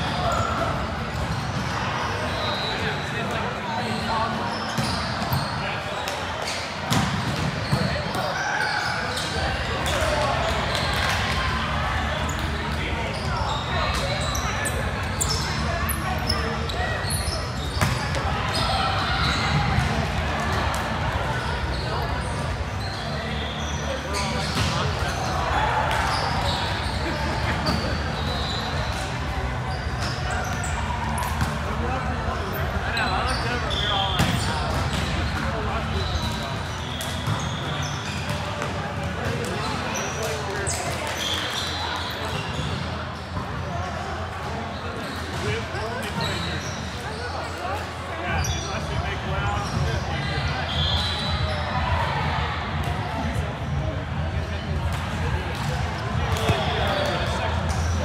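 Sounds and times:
shoes squeaking on court: 0.0 - 11.2, 12.2 - 43.8, 44.5 - 51.8, 54.9 - 58.0
players chatter and calls echoing: 0.0 - 58.0
balls bouncing on hard court: 4.6 - 8.4, 12.2 - 23.1, 23.7 - 43.6, 54.7 - 58.0.

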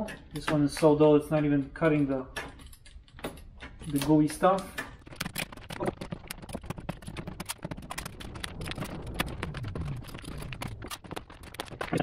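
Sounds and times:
plastic sheet crinkling: 5.0 - 12.0.

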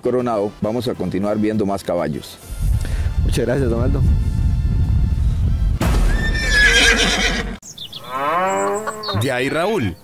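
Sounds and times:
background music: 0.0 - 7.6
horse whinnying: 6.1 - 9.3.

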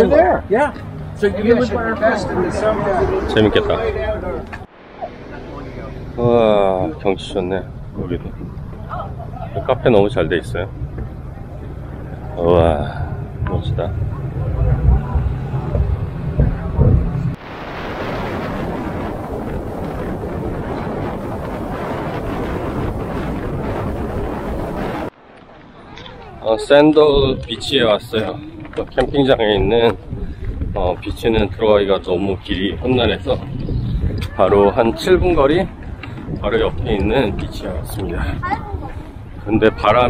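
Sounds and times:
people's voices: 0.0 - 17.4, 25.6 - 40.0
car road noise at speed: 0.0 - 17.6
outdoor rumble: 0.0 - 40.0
wind blowing over microphone: 0.0 - 40.0.

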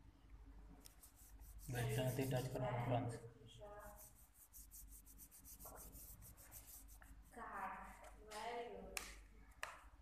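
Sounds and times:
fingertips rubbing a card: 0.8 - 2.6, 3.8 - 7.3.

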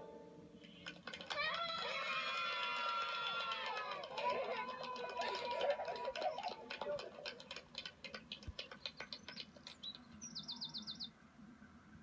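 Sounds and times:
bird chirping: 8.5 - 11.1.

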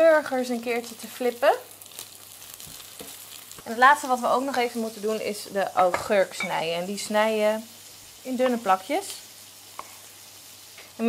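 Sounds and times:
burger patties sizzling in a pan: 0.0 - 11.0.

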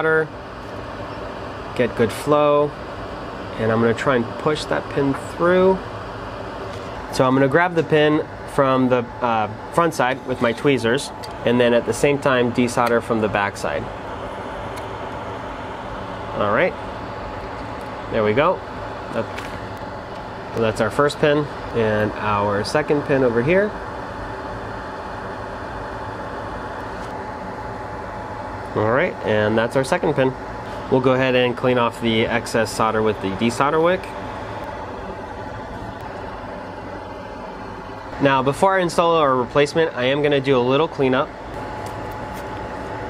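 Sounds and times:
fan running: 0.0 - 43.0
low hum and hiss of equipment: 0.0 - 43.0.

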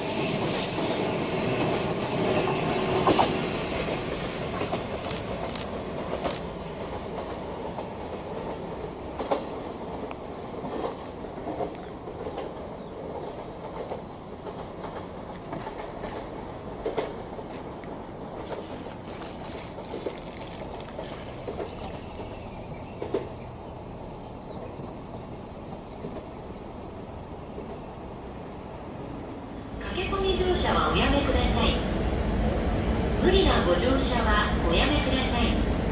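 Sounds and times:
distant train rumbling: 0.0 - 35.9.

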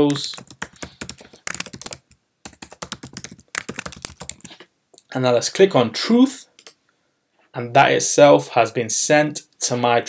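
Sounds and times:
keyboard typing: 0.0 - 4.6.

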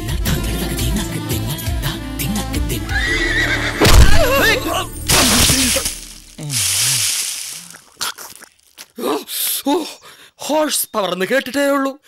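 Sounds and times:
straw rustling and crunching: 3.8 - 9.0.

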